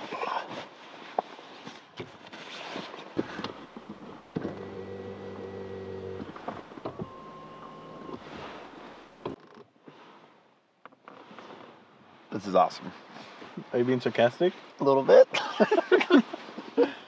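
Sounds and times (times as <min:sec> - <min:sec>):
light clicks and rustles: 0:00.5 - 0:10.0
small electric motor whirring: 0:04.3 - 0:08.3.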